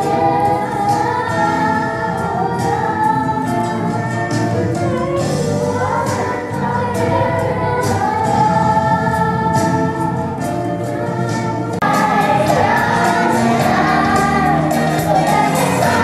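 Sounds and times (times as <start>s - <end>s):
musical accompaniment: 0.0s - 16.0s
young voices singing together: 0.0s - 16.0s.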